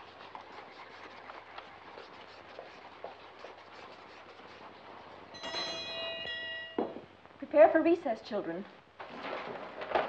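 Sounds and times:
bell ringing: 5.4s - 7.0s.

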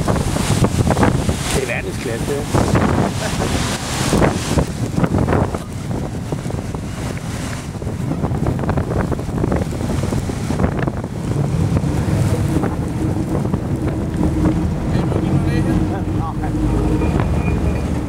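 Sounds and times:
low engine drone: 0.0s - 18.0s
wind buffeting microphone: 0.0s - 18.0s.

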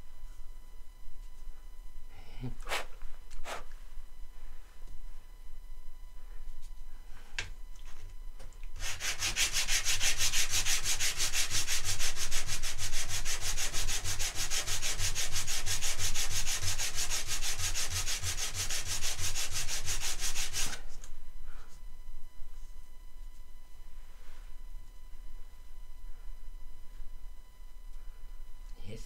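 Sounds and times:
wood sanding on sandpaper: 8.8s - 20.8s.

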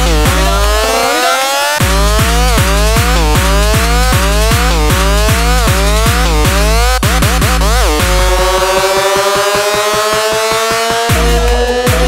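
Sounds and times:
heavy kick drum: 0.0s - 1.0s, 1.8s - 8.8s, 9.6s - 12.0s
fast pulsing roll: 0.0s - 12.0s
rising synth tones: 0.0s - 12.0s
synth lead notes: 0.0s - 12.0s.

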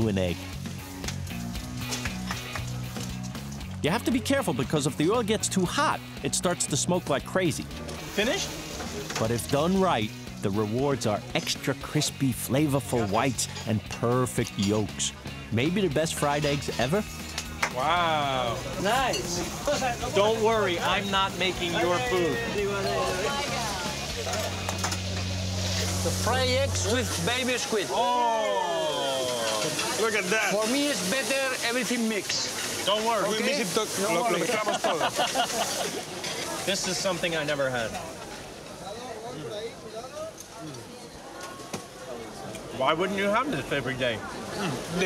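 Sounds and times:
background music bass notes: 0.0s - 29.2s
faint customer chatter: 16.6s - 45.0s
eggs sizzling in frying pan: 23.4s - 37.0s.

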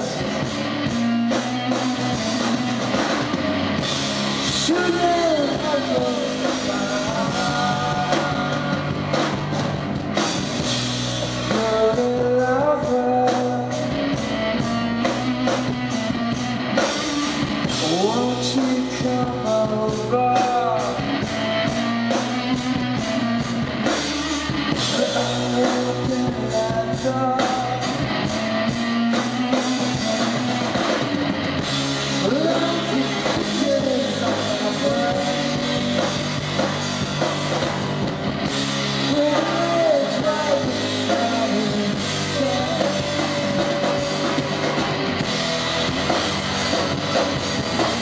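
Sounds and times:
electric guitar: 0.0s - 48.0s
rock band playing live: 0.0s - 48.0s
steady drum beat: 0.0s - 48.0s
person singing: 4.5s - 9.2s, 11.3s - 15.2s, 16.8s - 31.0s, 32.1s - 36.7s, 39.0s - 45.1s.

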